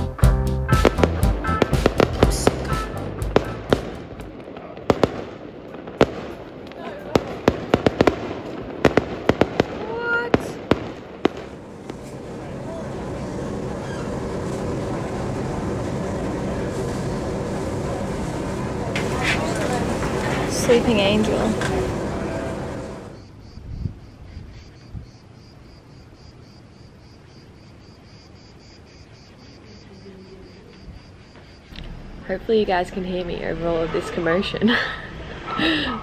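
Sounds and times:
steady rushing noise: 0:00.0 - 0:09.4, 0:11.0 - 0:24.0
fireworks bangs and crackles: 0:00.7 - 0:23.3.

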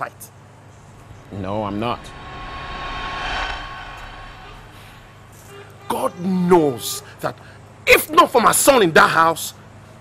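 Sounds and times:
vehicle passing with whine: 0:00.9 - 0:05.4.

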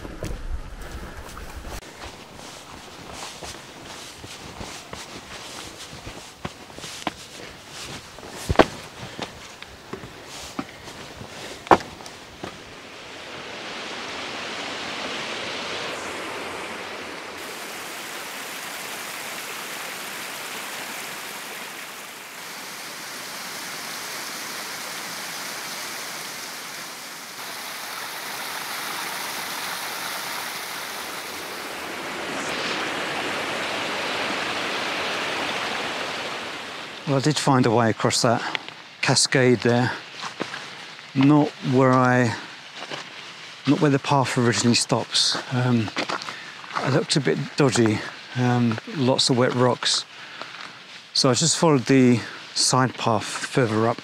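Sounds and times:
footsteps: 0:00.0 - 0:12.8, 0:39.6 - 0:43.9, 0:44.5 - 0:49.8
waterfall rushing over rock: 0:01.9 - 0:42.6
sharp knocks: 0:11.7 - 0:12.6.

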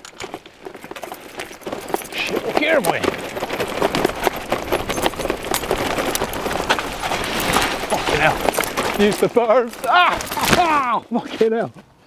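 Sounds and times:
bike rattling and clattering: 0:00.0 - 0:10.9
tyres crunching on loose ground: 0:00.0 - 0:12.0.

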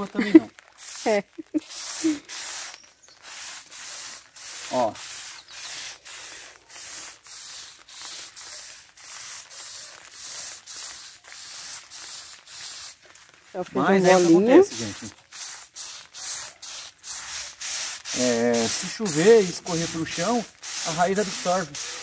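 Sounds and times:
sprayer hissing: 0:00.0 - 0:22.0.

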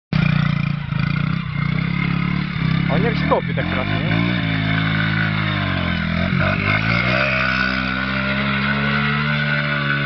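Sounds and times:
engine humming steadily: 0:00.1 - 0:10.0.

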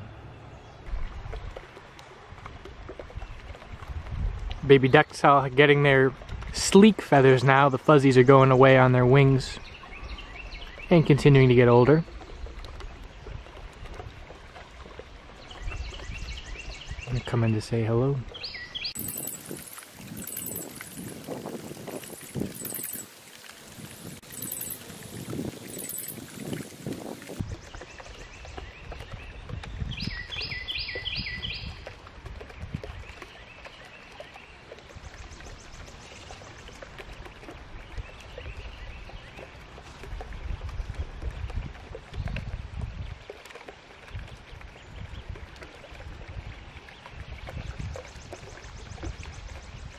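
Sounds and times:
birds chirping: 0:08.8 - 0:13.4, 0:15.4 - 0:31.8
very high bird trill: 0:18.5 - 0:21.1, 0:22.0 - 0:23.1, 0:24.2 - 0:26.5
falling bird peeps: 0:18.9 - 0:20.9, 0:22.2 - 0:23.1, 0:24.2 - 0:26.4.

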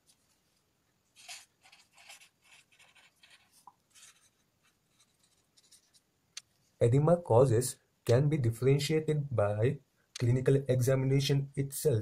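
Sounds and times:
pen scratching on paper: 0:01.2 - 0:06.0.

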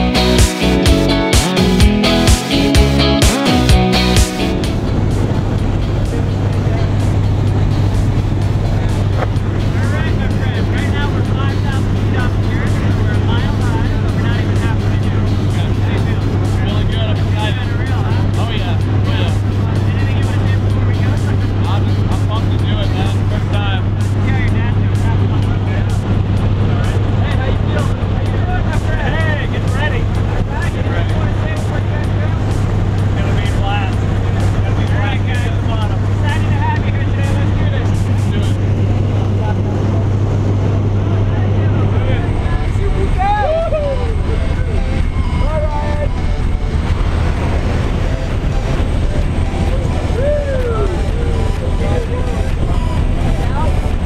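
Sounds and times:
propeller engine drone: 0:00.0 - 0:54.0.

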